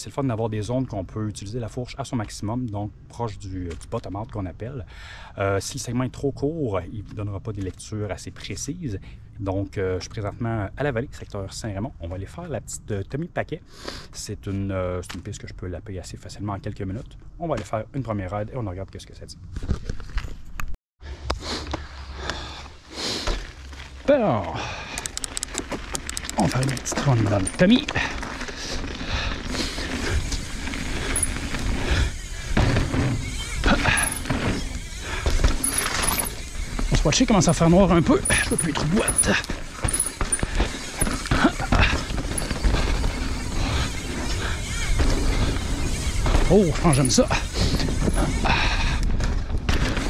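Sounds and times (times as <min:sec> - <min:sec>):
bike tyres crunching on gravel: 0:22.9 - 0:50.0
bike clicks and rattles: 0:24.7 - 0:50.0.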